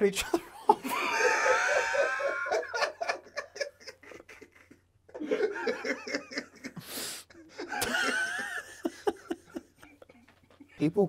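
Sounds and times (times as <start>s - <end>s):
laughter bursts: 0.5s - 10.7s.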